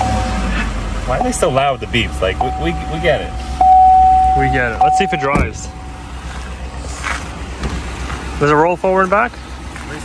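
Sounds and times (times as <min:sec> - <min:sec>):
pickup truck engine idling: 0:00.0 - 0:10.0.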